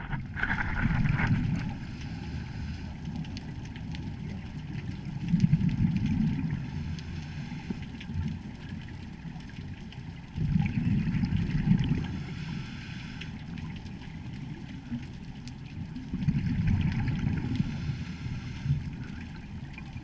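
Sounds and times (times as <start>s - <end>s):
scuba regulator bubbles underwater: 0.0s - 20.0s
faint clicks: 2.0s - 6.1s.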